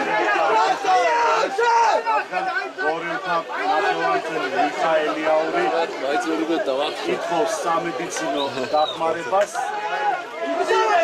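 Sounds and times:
voices shouting over each other: 0.0 - 11.0.

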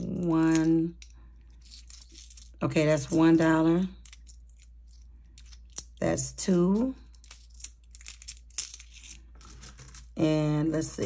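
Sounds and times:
coins clinking in a hand: 0.0 - 10.2.

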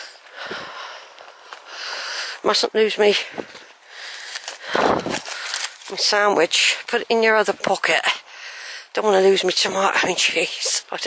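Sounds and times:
clothing rustling: 3.3 - 7.1.

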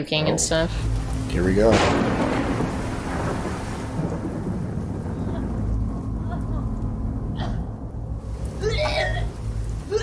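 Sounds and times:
steady rain: 0.3 - 10.0
thunder roll: 0.9 - 8.1.

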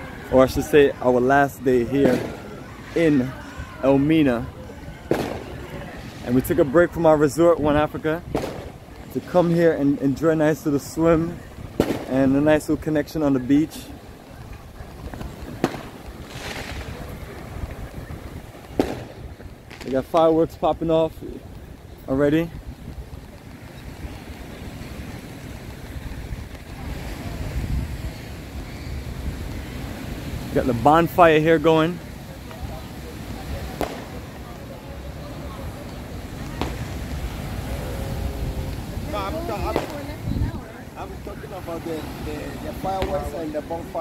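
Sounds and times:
low background rush: 0.0 - 44.0
surf rumble: 0.0 - 44.0
wind on microphone: 0.0 - 44.0
fireworks bangs: 0.4 - 27.5, 30.8 - 44.0
firework pops: 2.0 - 2.4, 5.0 - 6.3, 7.6 - 9.2, 11.7 - 12.3, 14.4 - 20.4, 33.6 - 34.5, 35.8 - 37.3, 38.7 - 40.2, 42.9 - 43.6.

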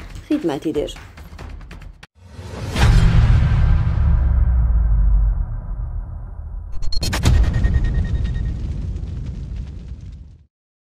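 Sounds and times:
deep boom rumble with crackles: 2.8 - 10.5.

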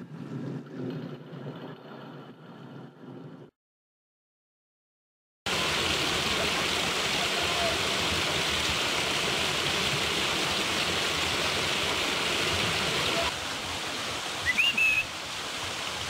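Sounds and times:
waterfall splashing into pool: 5.5 - 16.0.

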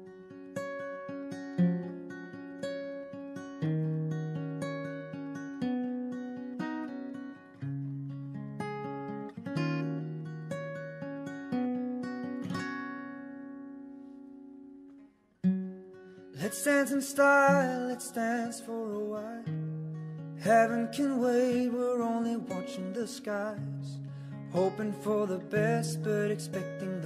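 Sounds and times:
acoustic guitar picking chords: 0.0 - 27.0.

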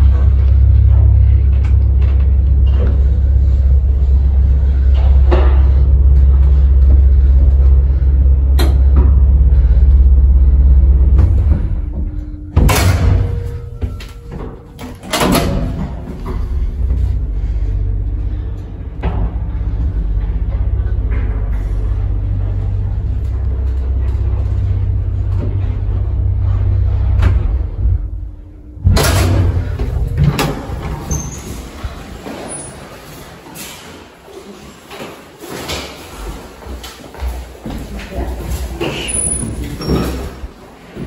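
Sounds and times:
lift machinery humming: 0.0 - 33.2.

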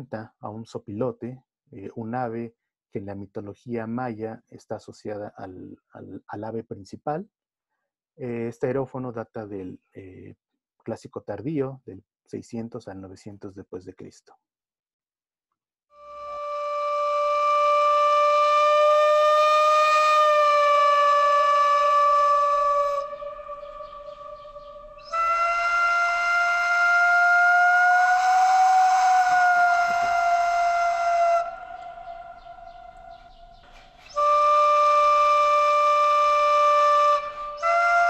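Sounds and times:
clay aerophone long held notes: 16.0 - 38.0.

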